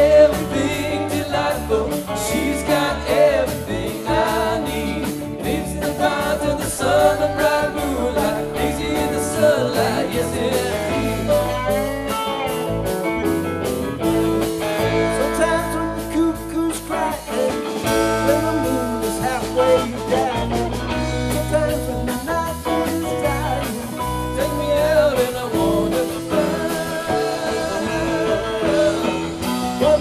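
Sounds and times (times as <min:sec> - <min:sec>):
person singing: 0:00.0 - 0:12.5, 0:14.9 - 0:30.0
bass: 0:00.0 - 0:30.0
drums: 0:00.0 - 0:30.0
electric guitars: 0:00.0 - 0:30.0
keyboard: 0:00.0 - 0:30.0.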